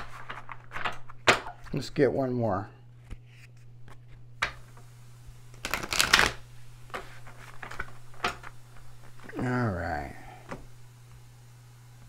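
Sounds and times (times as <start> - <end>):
cards being shuffled: 0.0 - 1.8, 5.5 - 9.4.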